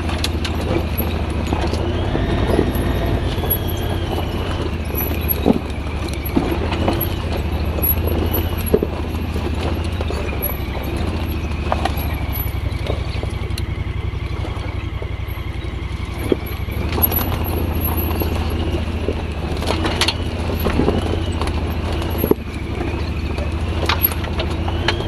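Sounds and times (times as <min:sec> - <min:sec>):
knocks and clunks over rocks: 0:00.0 - 0:25.0
vehicle engine running at low revs: 0:00.0 - 0:25.0.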